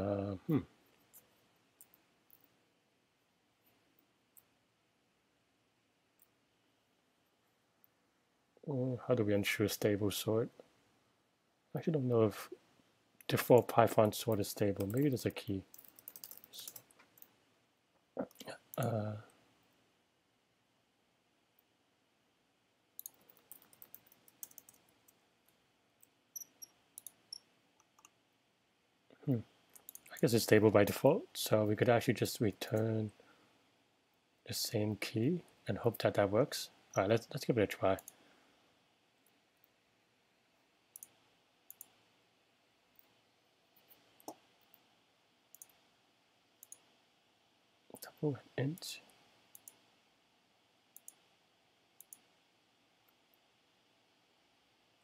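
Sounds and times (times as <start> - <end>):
keyboard and mouse clicking: 14.3 - 15.1, 15.7 - 17.3, 23.0 - 24.9, 26.4 - 28.1, 29.7 - 30.2, 49.5 - 49.8.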